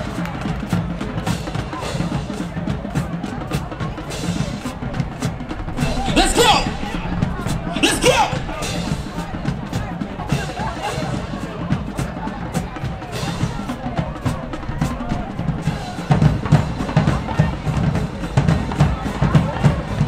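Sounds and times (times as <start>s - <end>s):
bass drums: 0.0s - 20.0s
snare drums: 0.0s - 20.0s.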